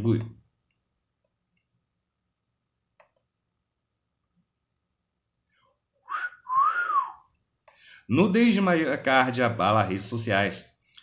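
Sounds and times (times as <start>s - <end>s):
man whistling: 6.0s - 7.3s.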